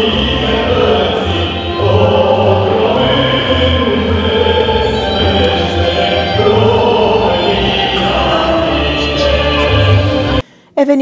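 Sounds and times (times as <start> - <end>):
children singing in chorus: 0.0 - 10.4
musical accompaniment: 0.0 - 10.4.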